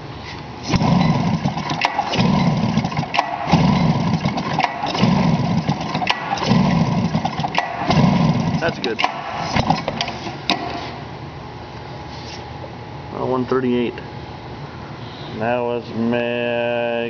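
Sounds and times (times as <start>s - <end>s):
engine cranking over: 0.6s - 11.0s.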